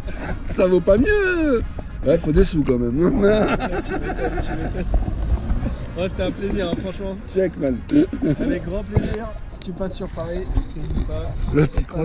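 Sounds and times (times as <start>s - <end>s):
men talking and chuckling: 0.0s - 10.1s.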